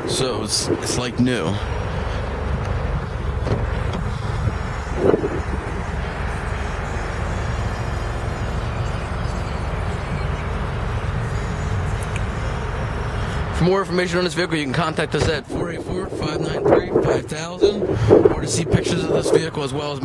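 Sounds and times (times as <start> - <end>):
wind rumble on microphone: 0.0 - 13.5, 14.5 - 20.0.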